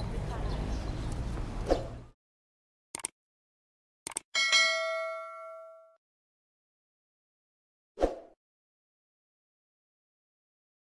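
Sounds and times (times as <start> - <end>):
short clicks: 2.9 - 3.2, 4.0 - 4.3
bright bell ding: 4.4 - 6.0.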